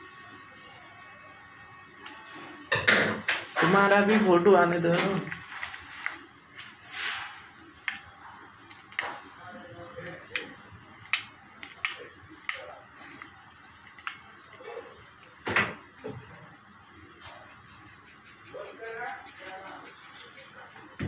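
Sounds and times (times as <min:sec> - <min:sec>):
faint steady high hiss: 0:00.0 - 0:21.0.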